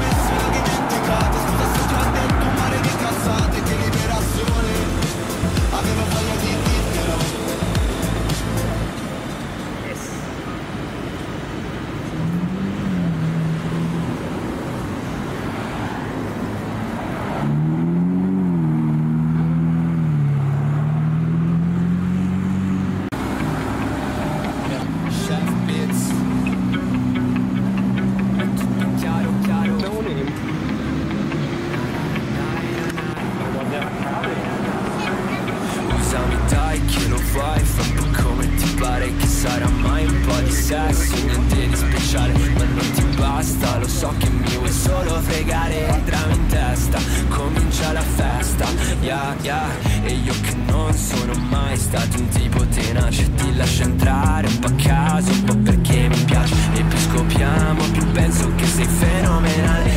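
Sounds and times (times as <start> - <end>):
music playing: 0.0 - 10.3, 23.1 - 59.9
sports car engines passing by: 0.0 - 59.9.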